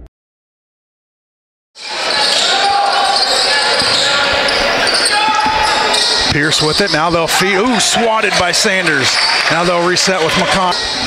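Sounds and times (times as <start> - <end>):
sneaker squeaks: 1.8 - 7.2
crowd murmuring in echoing hall: 1.8 - 11.0.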